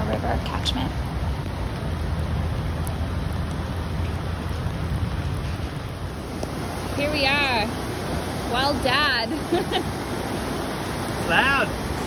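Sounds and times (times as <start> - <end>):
falling rain: 0.0 - 12.0
flooded river rushing: 0.0 - 12.0.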